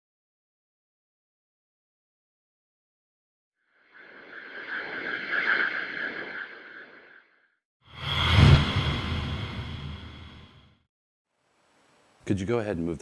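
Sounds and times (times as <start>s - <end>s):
whoosh: 4.0s - 7.3s, 7.9s - 10.7s.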